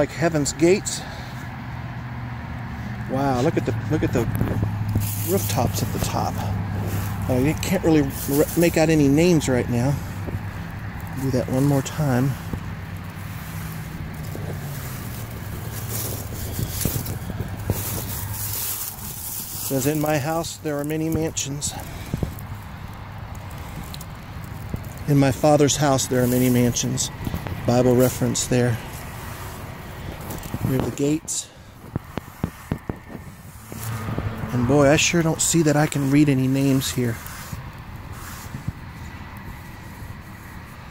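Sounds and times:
steady outdoor background: 0:00.0 - 0:40.9
sponge rubbing on stone: 0:11.2 - 0:20.0, 0:37.1 - 0:40.9.

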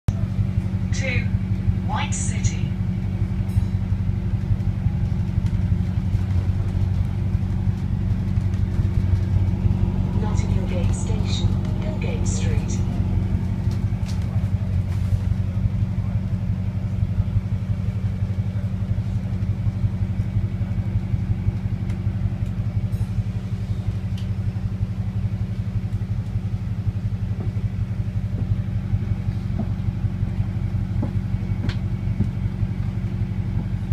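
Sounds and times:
bus engine rumbling: 0:00.1 - 0:33.9.

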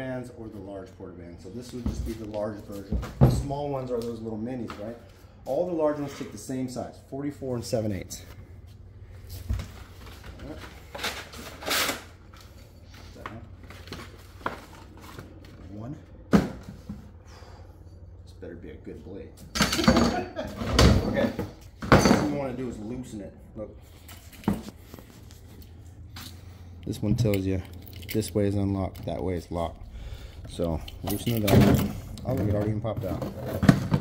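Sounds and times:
faint low hum: 0:00.0 - 0:34.0.

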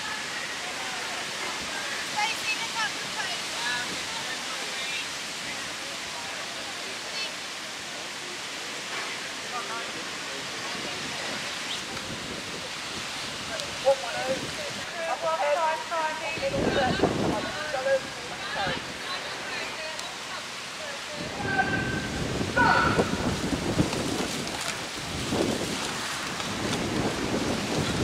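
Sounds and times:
rushing outdoor noise: 0:00.0 - 0:28.0.

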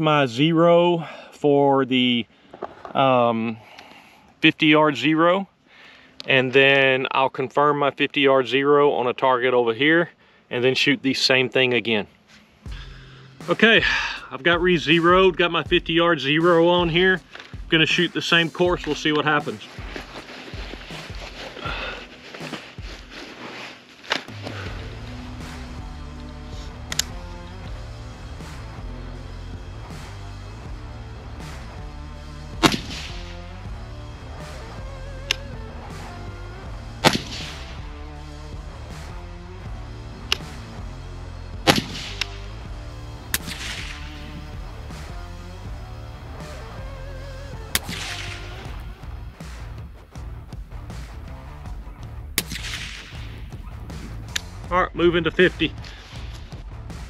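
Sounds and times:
background music: 0:11.3 - 0:57.0
sharp clicks: 0:26.9 - 0:27.2, 0:41.7 - 0:42.4, 0:54.3 - 0:54.6
suppressed rifle shots: 0:32.6 - 0:33.4, 0:37.0 - 0:37.8, 0:41.6 - 0:42.5, 0:43.3 - 0:44.6, 0:47.7 - 0:48.8, 0:52.4 - 0:53.4.

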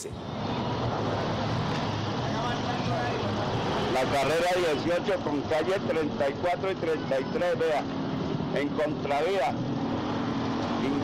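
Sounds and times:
traffic: 0:00.0 - 0:11.0.

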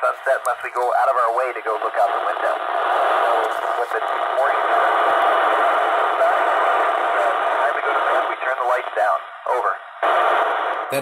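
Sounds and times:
voice through radio noise: 0:00.0 - 0:09.9
radio static hiss: 0:00.0 - 0:11.0.

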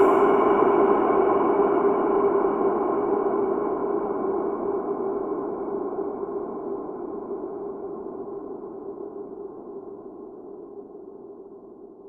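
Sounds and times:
dark ringing ambient drone: 0:00.0 - 0:11.8.

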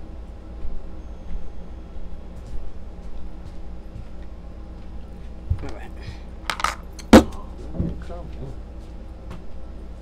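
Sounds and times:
small hard objects clinking: 0:06.5 - 0:06.8.

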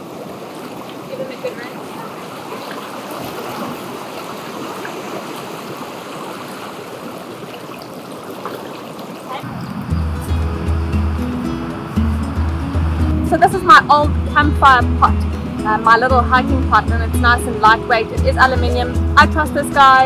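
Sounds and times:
water washing over rocks: 0:00.0 - 0:13.8
music with deep bass line: 0:09.5 - 0:20.0.

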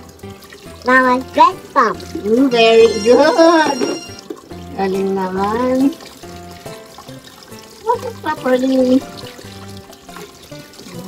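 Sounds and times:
background music with held notes: 0:00.0 - 0:11.0
kitchen tap running: 0:00.0 - 0:11.0.

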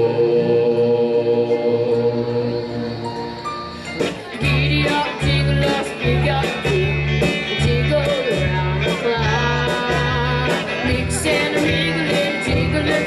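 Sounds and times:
guitar: 0:00.0 - 0:13.0
live band music: 0:00.0 - 0:13.0
person singing: 0:00.0 - 0:13.0
pulsing bass line: 0:00.0 - 0:13.0.

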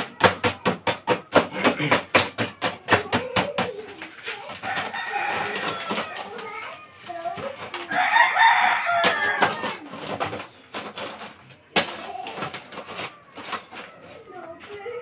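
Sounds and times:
rooster crowing: 0:04.6 - 0:06.2, 0:07.9 - 0:09.8
chickens calling: 0:04.6 - 0:10.6.

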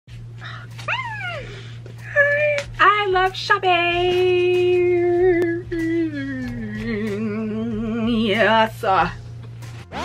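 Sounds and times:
steady low hum: 0:00.1 - 0:09.9.

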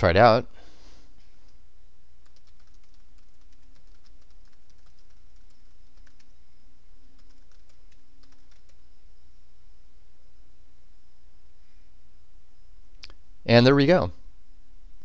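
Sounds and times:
steady low hum: 0:00.0 - 0:15.0
typing on computer keyboard: 0:02.2 - 0:06.3, 0:07.2 - 0:08.8.

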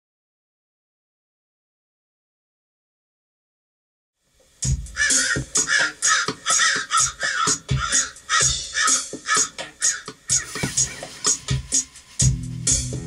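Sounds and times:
crows cawing: 0:04.9 - 0:11.4.

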